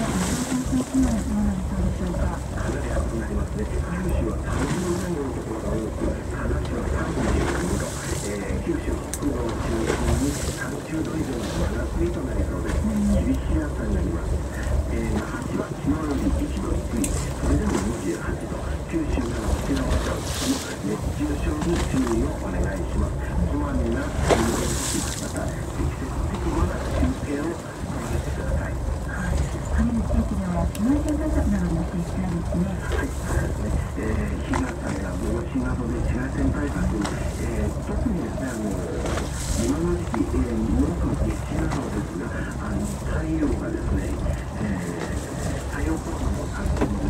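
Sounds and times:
boat engine low rumble: 0.0s - 47.0s
voices talking: 0.0s - 47.0s
water noise: 0.0s - 47.0s.

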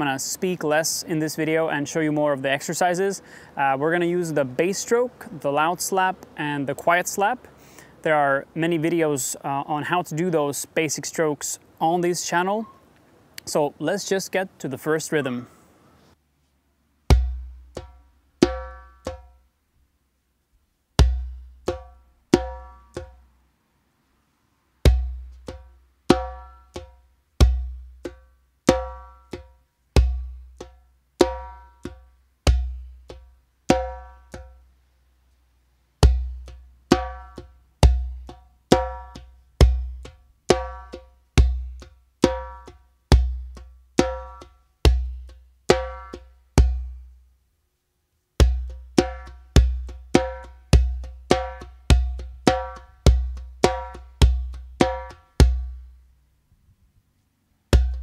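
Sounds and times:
djembe bass strokes and slaps: 17.0s - 19.4s, 20.9s - 23.3s, 24.8s - 34.7s, 36.0s - 47.2s, 48.4s - 56.0s, 57.7s - 58.0s.

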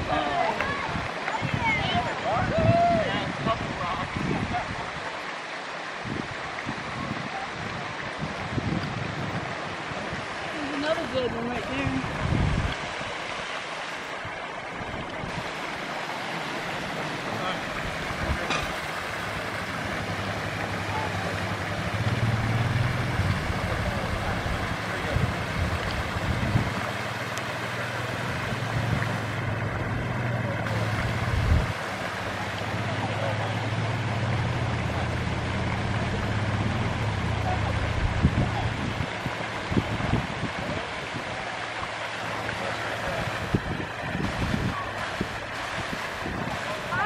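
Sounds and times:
water splashing from aerator: 0.0s - 47.0s.

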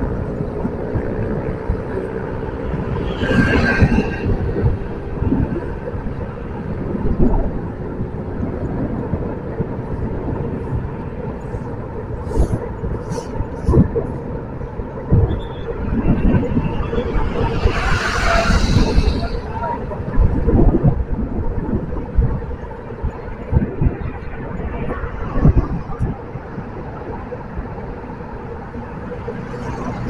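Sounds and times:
vehicle engine and road noise: 0.0s - 30.0s
wind buffeting microphone: 0.0s - 30.0s.

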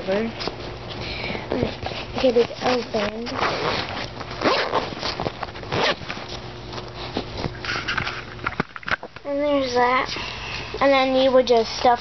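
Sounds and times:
bag rustling: 1.6s - 8.3s
zipper pulled open: 3.3s - 6.1s.

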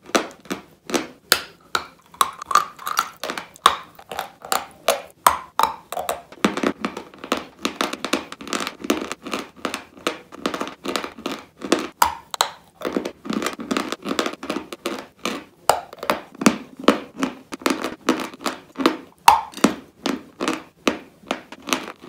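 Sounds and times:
bite into crunchy dessert: 0.4s - 6.4s
crunchy chewing: 1.6s - 7.0s, 8.4s - 16.2s.

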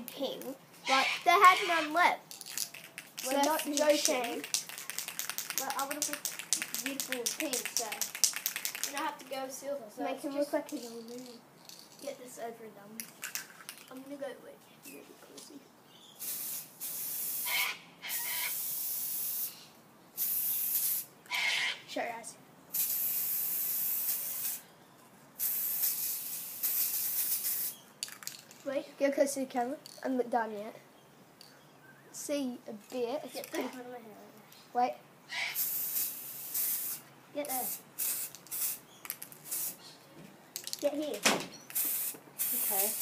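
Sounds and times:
aerosol can spraying: 16.2s - 17.6s, 20.2s - 21.1s, 22.7s - 24.6s, 25.4s - 27.8s, 35.6s - 39.8s, 41.7s - 43.0s.

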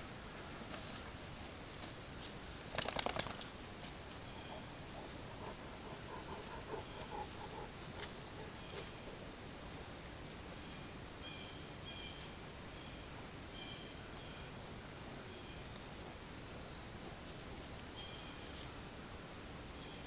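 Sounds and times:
insect chorus: 0.0s - 20.0s.

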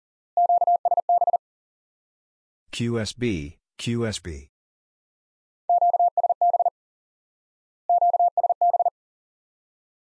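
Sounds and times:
morse code beeps: 0.4s - 1.4s, 5.7s - 6.7s, 7.9s - 8.9s.

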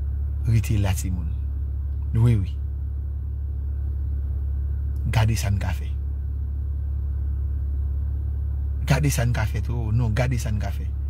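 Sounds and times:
car interior rumble: 0.0s - 11.0s
man talking: 0.4s - 1.4s, 2.1s - 2.6s, 5.0s - 6.0s, 8.8s - 11.0s.

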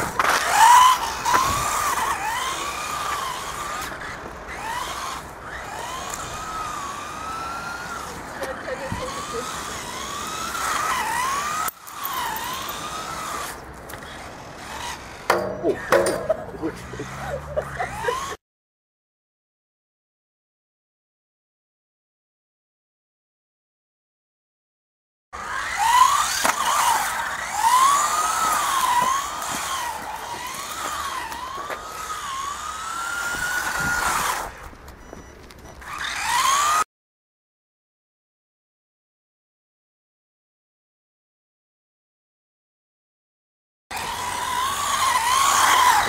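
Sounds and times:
toy car electric motor whining: 0.0s - 18.4s, 25.4s - 36.9s, 43.9s - 46.0s.

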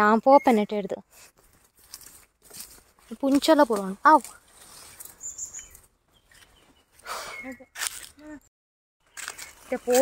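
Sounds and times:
faint high chirp: 0.2s - 0.8s, 4.9s - 7.8s.

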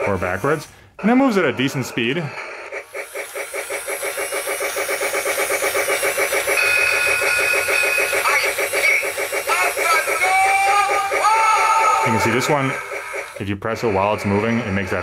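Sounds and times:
toy steam chuffing: 0.0s - 15.0s
toy train whistle: 2.8s - 15.0s.

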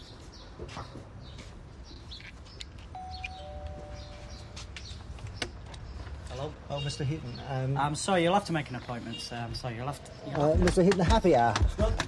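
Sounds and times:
birds chirping: 0.0s - 11.8s
two-note door chime: 3.0s - 4.4s.

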